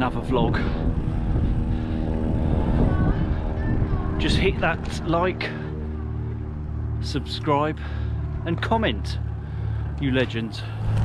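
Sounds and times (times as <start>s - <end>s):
wind buffeting microphone: 0.0s - 7.0s
steady hum of even tones: 0.2s - 11.0s.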